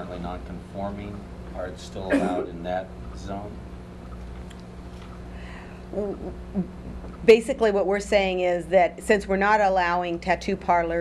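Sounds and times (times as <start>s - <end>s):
low room tone hum: 0.0s - 11.0s
person murmuring hmm: 2.0s - 2.5s.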